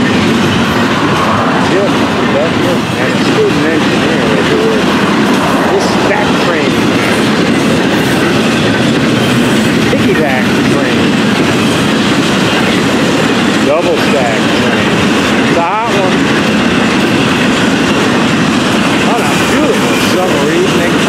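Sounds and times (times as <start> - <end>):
freight train rumbling past: 0.0 - 21.0
wheel clatter on rails: 0.0 - 21.0.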